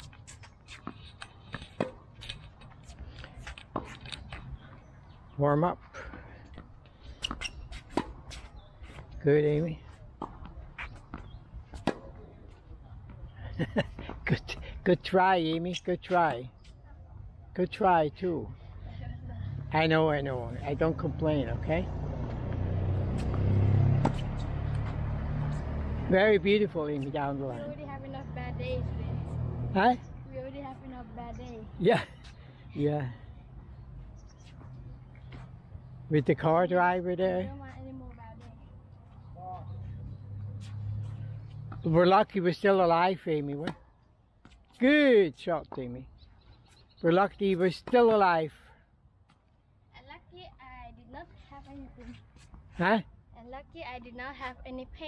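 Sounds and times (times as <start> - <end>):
tennis balls struck by rackets: 0.0 - 4.8, 6.5 - 9.1, 10.0 - 13.3, 22.1 - 27.8, 43.5 - 44.8.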